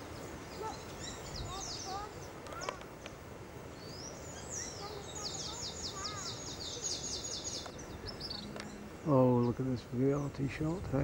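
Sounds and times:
songbird singing: 0.0s - 11.0s
steady background hiss: 0.0s - 11.0s.

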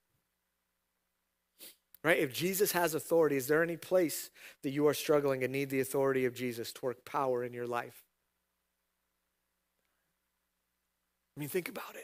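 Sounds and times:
sharp intake of breath: 1.6s - 1.9s, 4.3s - 4.6s.

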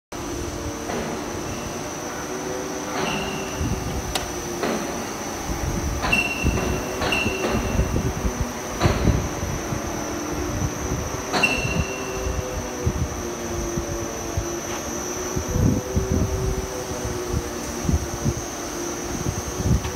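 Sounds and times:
workshop machinery whining: 0.2s - 19.9s.

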